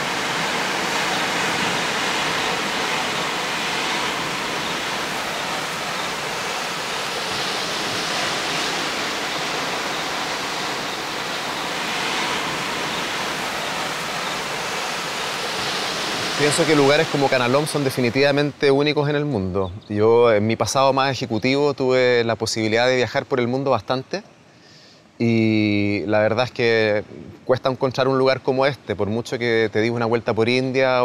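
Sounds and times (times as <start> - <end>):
surf breaking against rocks: 0.0 - 18.5.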